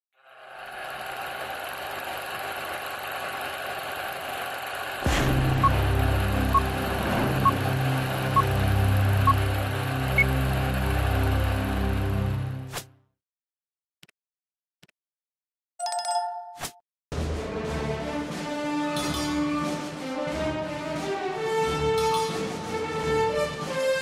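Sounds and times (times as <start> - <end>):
film projector running: 0.3 - 12.5
low droning hum: 5.0 - 12.6.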